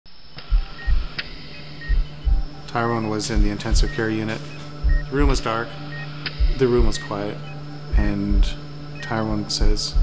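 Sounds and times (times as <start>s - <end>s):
deep heartbeat-like thumps: 0.4s - 5.6s, 6.3s - 8.6s, 9.6s - 10.0s.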